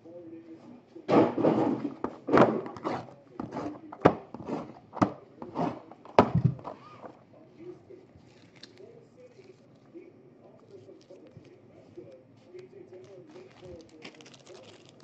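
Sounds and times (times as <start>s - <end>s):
boxes thunking and knocking: 1.1s - 6.8s
plastic wrapper rustling: 8.2s - 9.9s, 12.5s - 15.0s.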